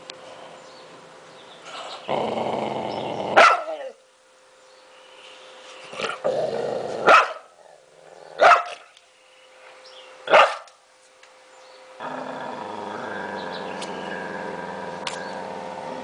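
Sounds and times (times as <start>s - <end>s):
dog barking sharply: 3.4s - 3.8s, 7.1s - 7.5s, 8.4s - 8.8s, 10.3s - 10.7s.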